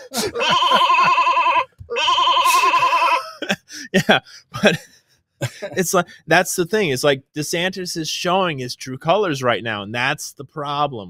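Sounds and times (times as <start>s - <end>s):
wavering bleating cry: 0.0s - 3.3s.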